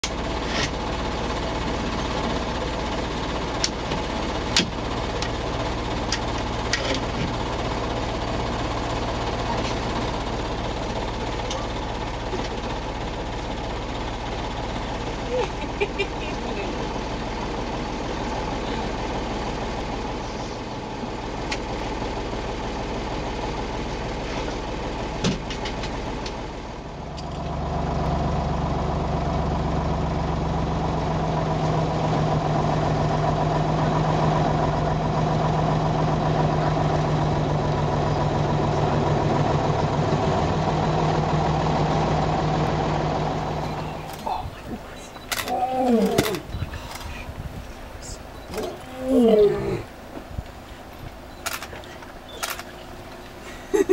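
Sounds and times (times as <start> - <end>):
engine hum with low tone: 0.0 - 53.9
vehicle engine idling: 0.0 - 53.9
person laughing: 15.2 - 16.9, 53.4 - 53.9.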